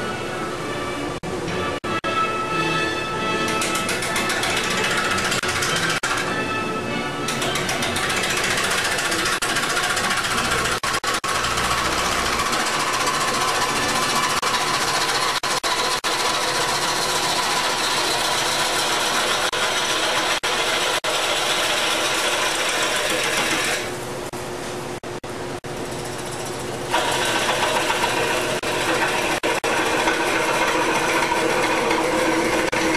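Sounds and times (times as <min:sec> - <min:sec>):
lathe gouge chattering on wood: 0:03.5 - 0:06.2, 0:07.3 - 0:23.9, 0:26.1 - 0:32.9.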